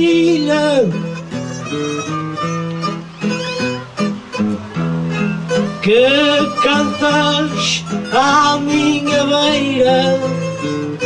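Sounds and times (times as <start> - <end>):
man singing: 0.0 - 1.1, 5.8 - 11.0
guitar plucked melody: 0.0 - 11.0.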